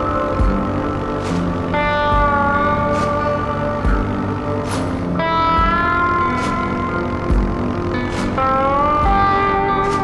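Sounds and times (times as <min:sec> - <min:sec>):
slide guitar gliding notes: 0:00.0 - 0:10.0
slow soft beat: 0:00.0 - 0:10.0.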